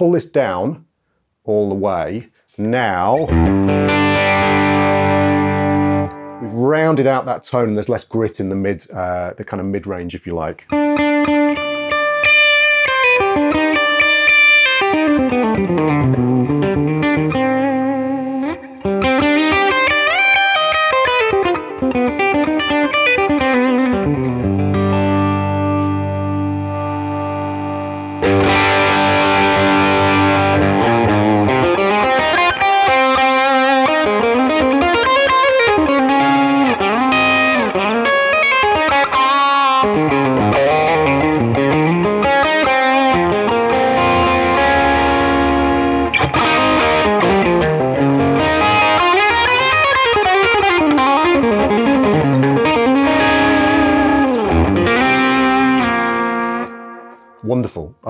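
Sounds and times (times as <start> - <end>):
electric guitar lead lines: 2.9 - 7.2, 10.7 - 57.4.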